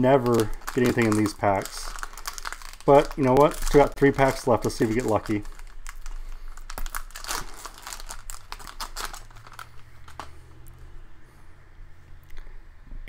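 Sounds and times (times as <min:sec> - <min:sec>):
wrapper crinkling and tearing: 0:00.0 - 0:10.6.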